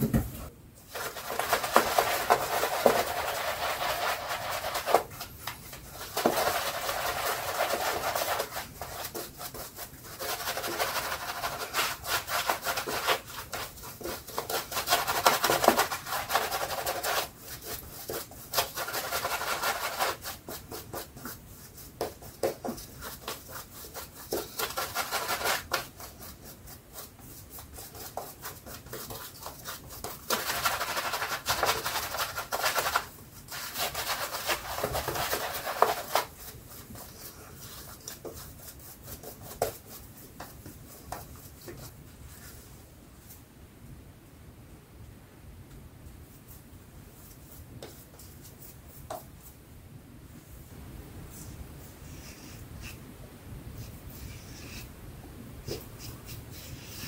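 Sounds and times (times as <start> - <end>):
shaving brush wet brushing strokes: 0.9 - 42.8, 55.6 - 57.0.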